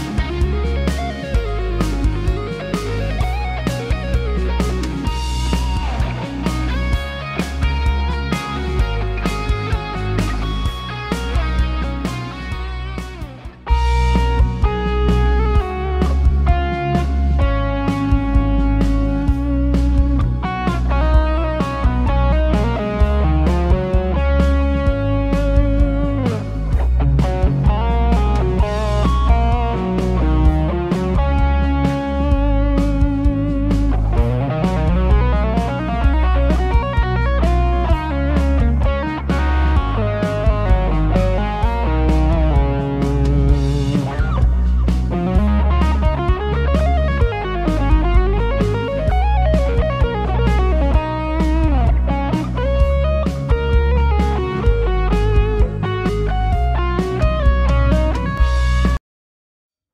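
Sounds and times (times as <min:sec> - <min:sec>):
bass line: 0:00.0 - 0:59.0
drum hits: 0:00.0 - 0:59.0
electric guitar lead: 0:00.0 - 0:59.0.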